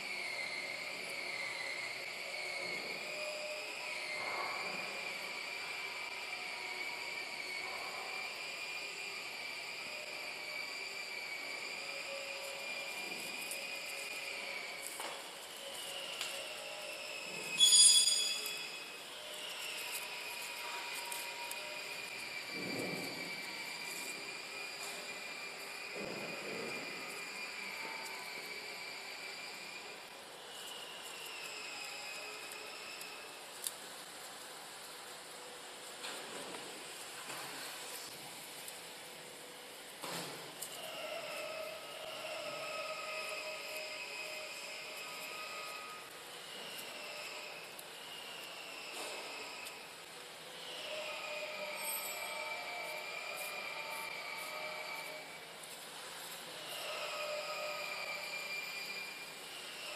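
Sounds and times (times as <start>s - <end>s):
high-pitched electrical whine: 0.0s - 59.9s
short electronic beep: 17.6s - 18.8s.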